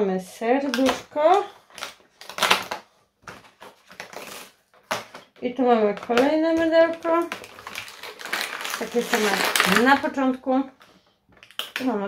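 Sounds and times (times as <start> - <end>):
cardboard tearing: 1.7 - 5.2, 7.1 - 10.0.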